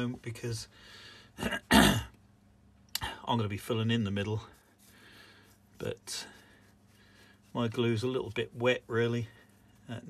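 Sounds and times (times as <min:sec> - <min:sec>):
man clearing his throat: 0:01.4 - 0:02.2.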